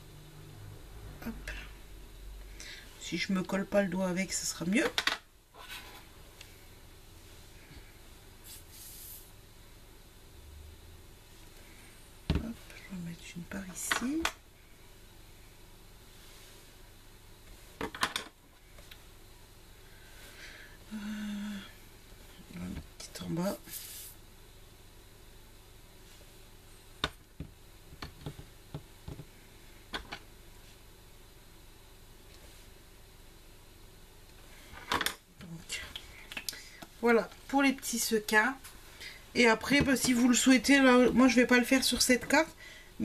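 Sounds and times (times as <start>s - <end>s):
person humming: 20.9s - 21.8s.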